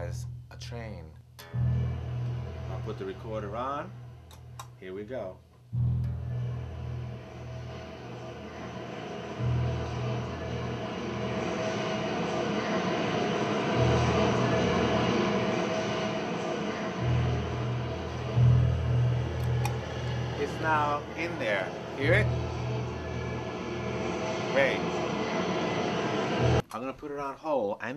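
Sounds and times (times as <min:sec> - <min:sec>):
low pulsing synthesizer notes: 0:00.0 - 0:26.6
steady high tone: 0:00.0 - 0:26.6
rushing noise: 0:01.4 - 0:05.1, 0:06.0 - 0:26.6.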